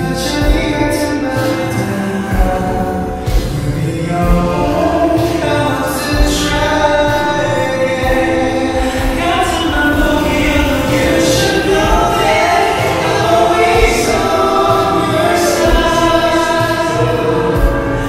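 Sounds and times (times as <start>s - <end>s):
live pop ballad with singing: 0.0s - 18.0s
drum hits: 2.3s - 18.0s.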